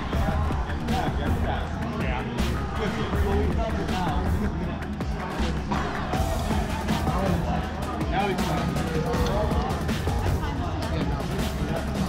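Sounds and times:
background music: 0:00.0 - 0:12.0
indistinct voices: 0:00.0 - 0:12.0.

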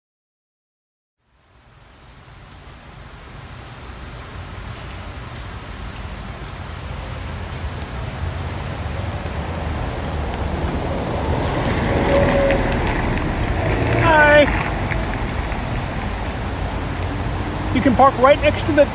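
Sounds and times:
rain hiss: 0:01.2 - 0:18.9
car engine and road rumble: 0:08.2 - 0:18.9.

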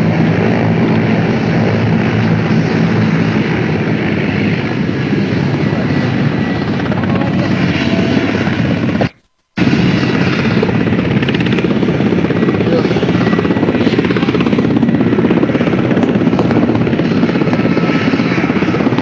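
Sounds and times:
helicopter rotor and engine: 0:00.0 - 0:19.0.

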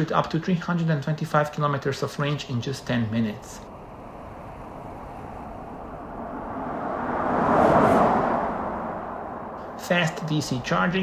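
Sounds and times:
car tyre and wind noise passing: 0:03.3 - 0:11.0.

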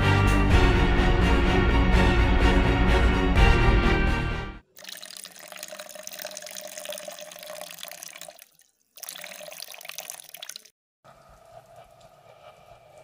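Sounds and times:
background music: 0:00.0 - 0:04.6.

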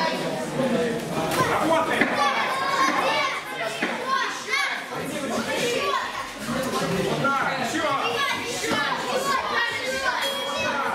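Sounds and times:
children calling and shouting: 0:00.0 - 0:10.9.

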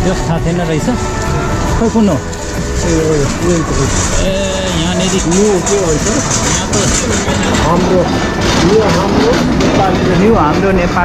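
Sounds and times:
people talking: 0:00.0 - 0:11.0
traffic noise: 0:00.0 - 0:11.0.

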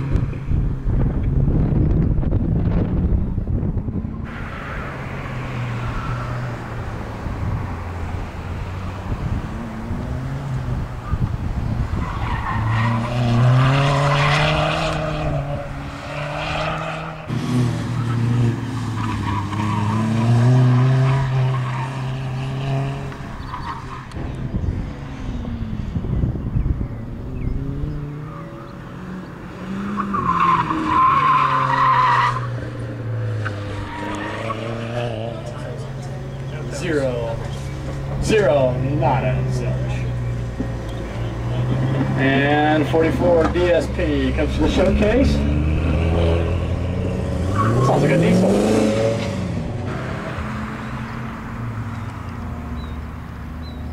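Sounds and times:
car engine revving: 0:01.2 - 0:53.9
tires squealing: 0:04.1 - 0:25.8, 0:27.4 - 0:53.8.

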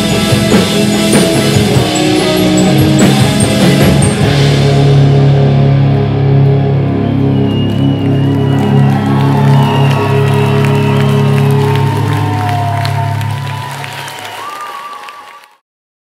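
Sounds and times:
band chord ringing out: 0:00.0 - 0:07.2
audience cheering and applauding: 0:06.9 - 0:15.6.

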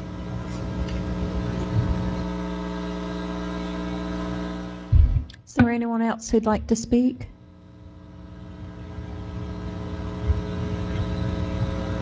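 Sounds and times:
low rumble: 0:04.9 - 0:05.4, 0:06.6 - 0:12.0
steady low-pitched tone: 0:06.2 - 0:12.0.

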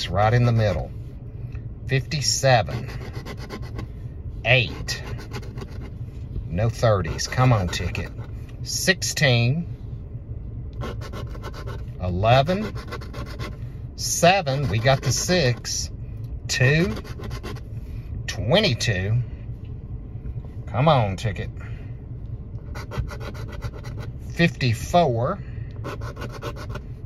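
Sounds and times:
coin scratching lottery ticket: 0:02.6 - 0:03.8, 0:04.6 - 0:05.9, 0:07.0 - 0:08.3, 0:10.8 - 0:11.8, 0:12.4 - 0:13.6, 0:14.4 - 0:15.7, 0:16.7 - 0:17.6, 0:22.7 - 0:24.1, 0:25.8 - 0:26.8.

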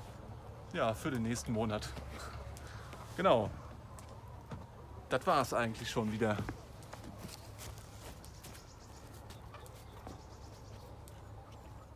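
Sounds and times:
chickens calling: 0:00.0 - 0:11.9.

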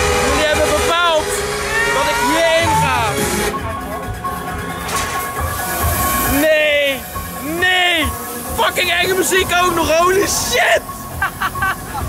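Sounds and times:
wailing notes: 0:00.0 - 0:11.1
fairground noise: 0:00.0 - 0:12.0
spooky music over speakers: 0:00.0 - 0:12.0.

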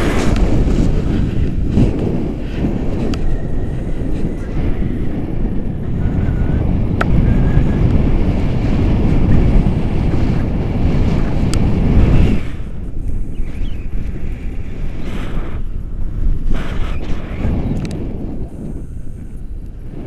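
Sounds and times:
wind buffeting a microphone: 0:00.0 - 0:20.0.

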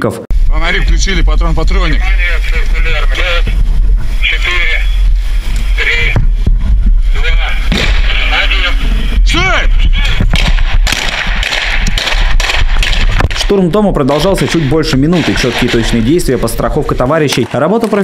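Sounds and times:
wind rumble on microphone: 0:00.3 - 0:17.0
men shouting commands: 0:05.6 - 0:06.3, 0:07.2 - 0:10.2
rifle gunshots: 0:07.7 - 0:08.3, 0:10.0 - 0:16.3.

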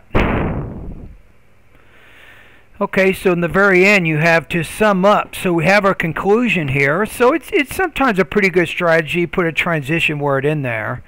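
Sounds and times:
rush of noise on microphone: 0:00.1 - 0:01.2.

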